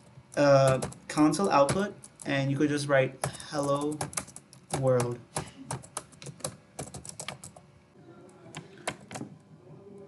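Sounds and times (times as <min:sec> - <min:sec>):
computer keyboard typing: 0:00.3 - 0:02.4, 0:03.2 - 0:07.6.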